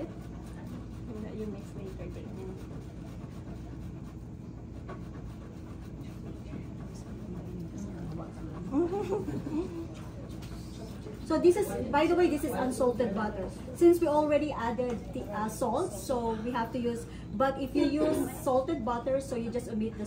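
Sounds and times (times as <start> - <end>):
butter grated on metal grater: 0.0 - 7.9
low kitchen hum: 0.0 - 20.0.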